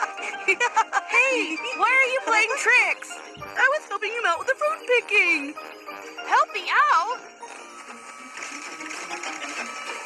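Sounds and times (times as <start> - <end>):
people talking: 0.0 - 5.6, 6.2 - 7.2, 8.3 - 10.0
rapid mechanical rattle: 7.5 - 10.0.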